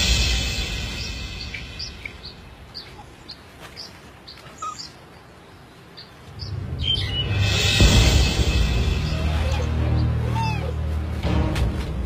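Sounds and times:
background music: 0.0 - 2.8, 6.4 - 12.0
bird chirping: 0.0 - 7.8.

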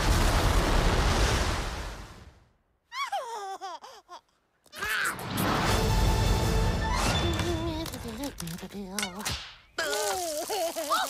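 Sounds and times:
loud rushing crumbling noise: 0.0 - 2.4.

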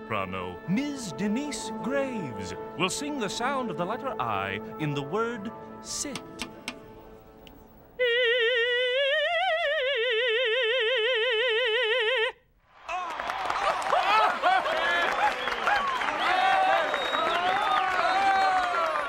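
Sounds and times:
crowd cheering: 12.7 - 19.0.

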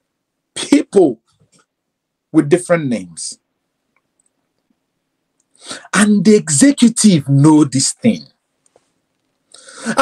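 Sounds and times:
man speaking: 0.6 - 1.3, 2.3 - 3.4, 5.7 - 8.4
sharp intake of breath: 5.6 - 5.9, 9.5 - 10.0.

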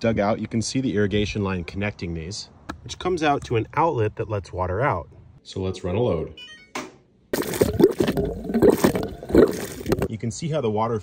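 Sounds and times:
water gushing and gurgling: 7.4 - 10.1.

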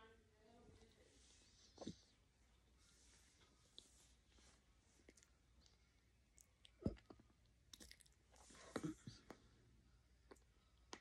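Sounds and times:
person chewing food: 5.0 - 9.6.

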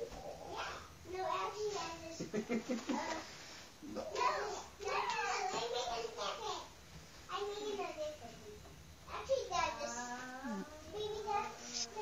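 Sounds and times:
child singing: 9.1 - 12.0.

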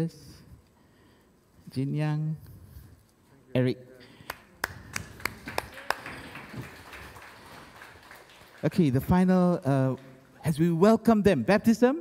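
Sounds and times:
hand claps: 4.2 - 8.9.

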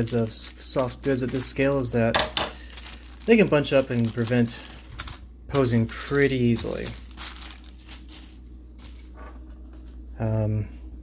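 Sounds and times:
cloth rustling: 6.5 - 10.1.

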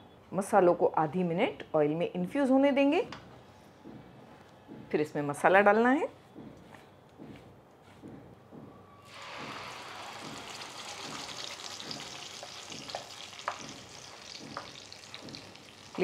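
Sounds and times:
paste sizzling in hot oil: 9.1 - 16.0.

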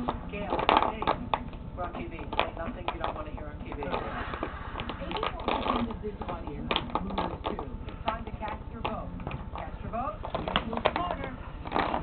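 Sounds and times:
television voices: 0.0 - 12.0.

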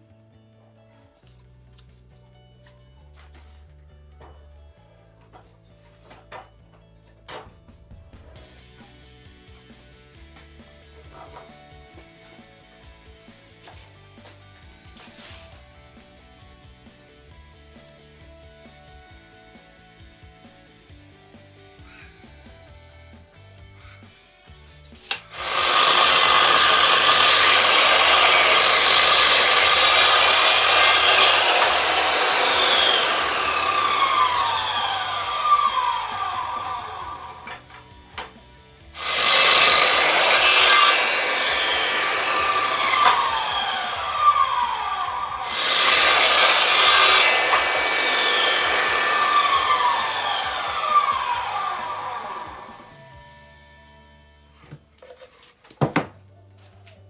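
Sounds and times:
mitre saw cutting wood: 25.0 - 37.7, 39.0 - 53.0
saw blade winding down: 25.1 - 37.7, 39.0 - 53.0.

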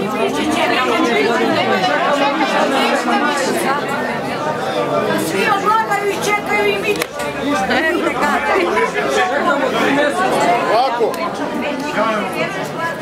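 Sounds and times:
crowd talking: 0.0 - 13.0.

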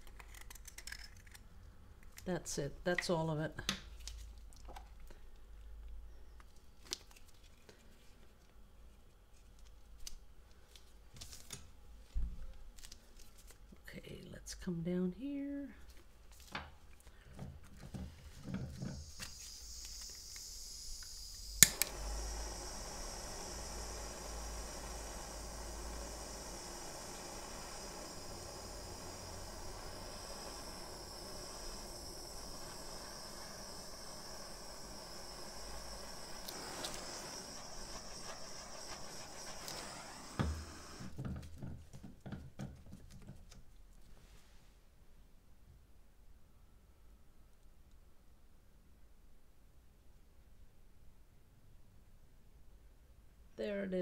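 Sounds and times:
butane torch hissing: 18.3 - 41.2
torch shutting off thump: 18.4 - 41.2
torch igniter click: 19.0 - 41.1.

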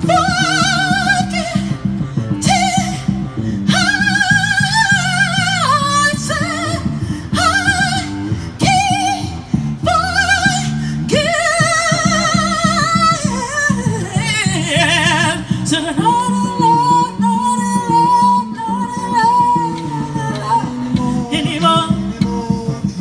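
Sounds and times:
person singing with vibrato: 0.0 - 23.0.

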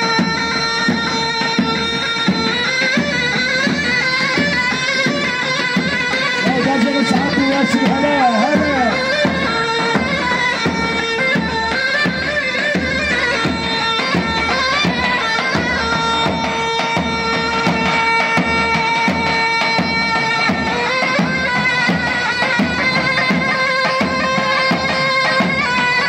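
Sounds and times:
steady drum beat: 0.0 - 26.0
wind-instrument melody: 0.0 - 26.0.

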